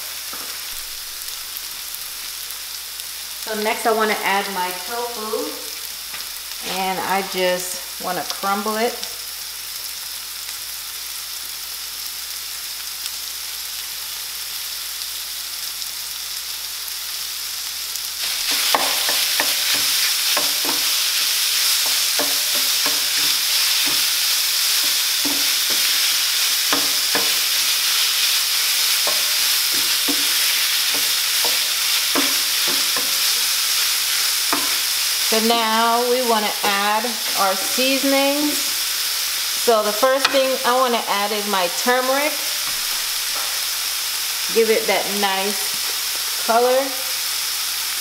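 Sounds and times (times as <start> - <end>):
vegetables sizzling in oil: 0.0 - 48.0
wooden spatula scraping a pan: 18.2 - 35.4.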